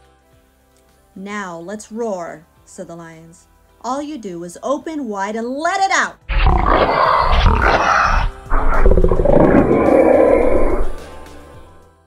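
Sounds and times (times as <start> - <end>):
lion roaring: 6.3 - 11.8.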